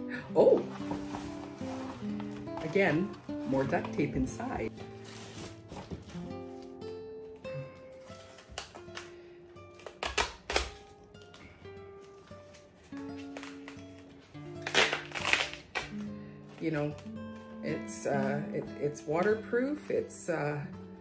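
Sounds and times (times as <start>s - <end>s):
plucked string music: 0.0s - 21.0s
taped packet crinkling: 0.4s - 7.0s, 7.8s - 17.6s.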